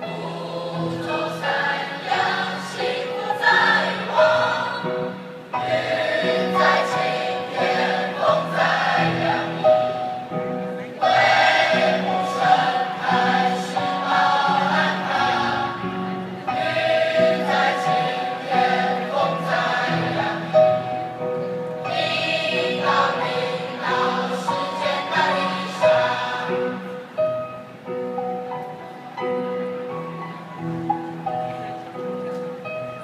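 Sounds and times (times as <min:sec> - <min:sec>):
mixed choir singing: 0:00.0 - 0:10.3, 0:11.0 - 0:27.1.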